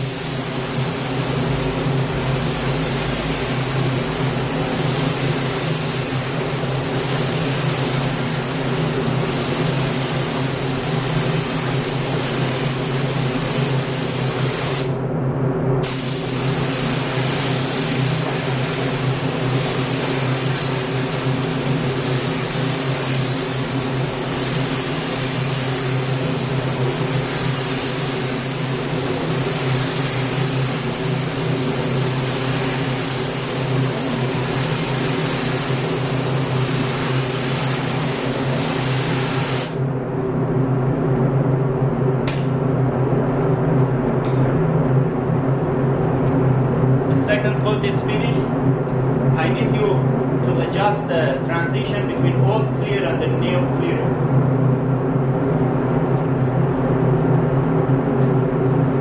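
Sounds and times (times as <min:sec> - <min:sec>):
spray gun hissing: 0:00.0 - 0:15.0, 0:15.8 - 0:39.8
steady low hum: 0:00.0 - 0:59.0.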